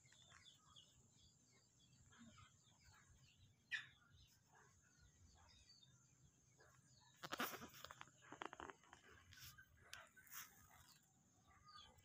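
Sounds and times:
animal bleating: 7.2s - 7.8s.

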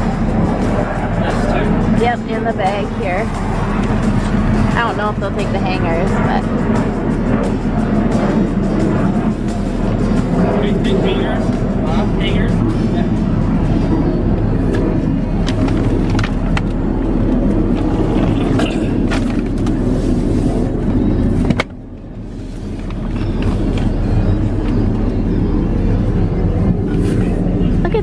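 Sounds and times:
background music: 0.0s - 21.4s.

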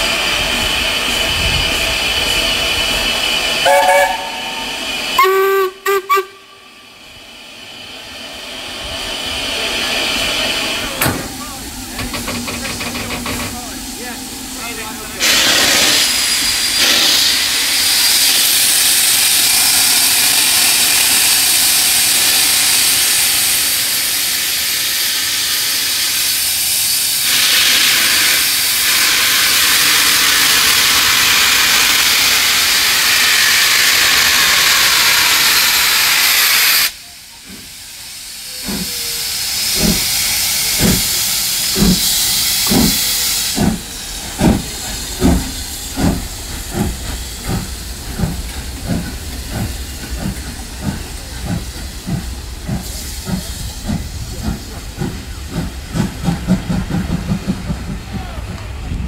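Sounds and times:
loud steam hiss: 0.0s - 59.0s
steam locomotive exhaust beats: 0.0s - 59.0s.

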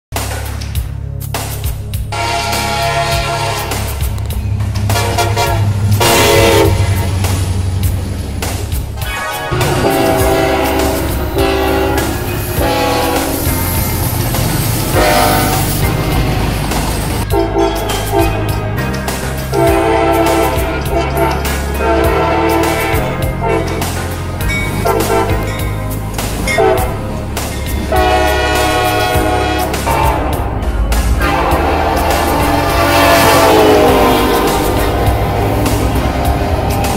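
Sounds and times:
low rumble of diesel locomotives: 0.3s - 36.9s
locomotive horn blasts: 2.1s - 4.2s, 4.9s - 7.3s, 9.2s - 16.6s, 17.2s - 18.8s, 19.4s - 36.9s.

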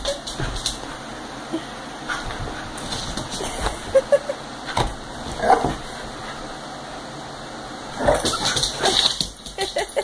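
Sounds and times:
dogs scuffling: 0.0s - 1.2s, 2.0s - 6.6s, 8.0s - 10.0s.

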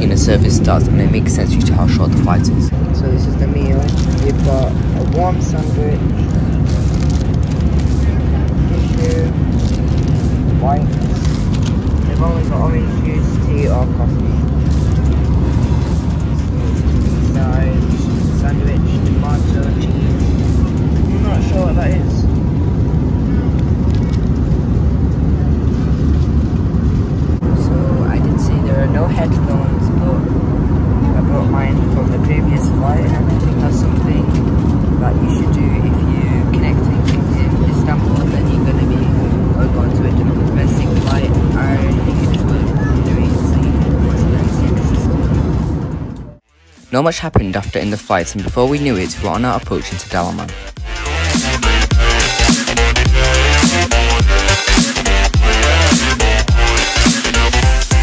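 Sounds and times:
faint voices: 0.0s - 26.6s, 27.4s - 46.4s
airliner cabin engine rumble: 0.0s - 54.2s.

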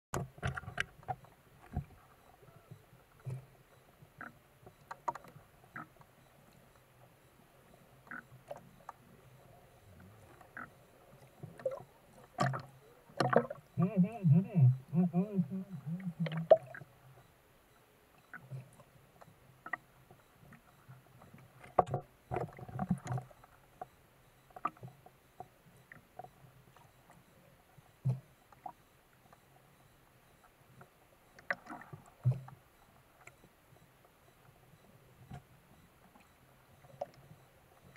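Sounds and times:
underwater sloshes and knocks: 11.2s - 13.7s, 21.3s - 24.0s.

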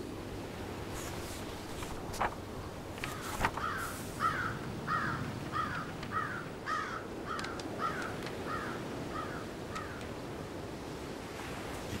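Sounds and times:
background hiss: 0.0s - 8.8s.

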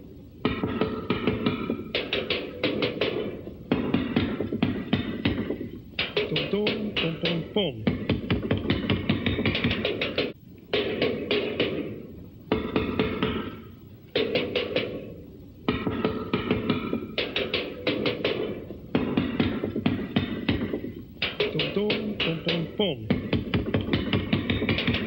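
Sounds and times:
drum kit played with sticks: 0.5s - 25.0s.

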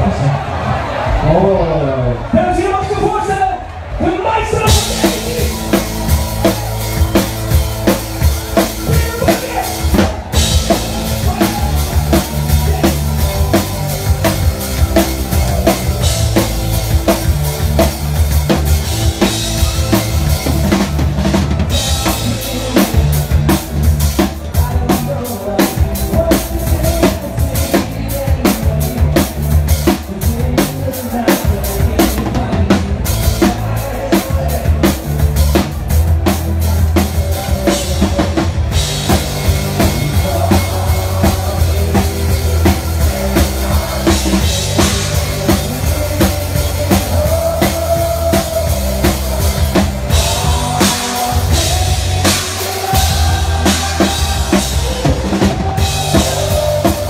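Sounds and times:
drum kit beat: 4.4s - 57.0s
live band music: 4.4s - 57.0s
heavy bass line: 4.5s - 57.0s.

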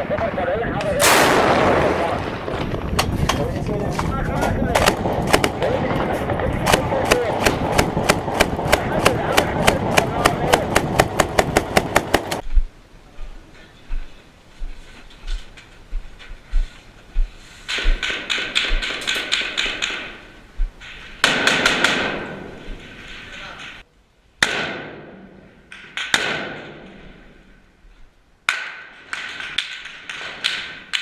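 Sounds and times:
machine gun firing: 1.0s - 2.6s, 4.7s - 12.4s
low thumps: 1.2s - 12.7s.

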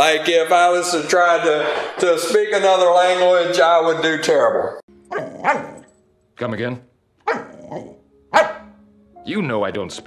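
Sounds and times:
small dog barking: 5.1s - 5.9s, 7.2s - 8.7s.

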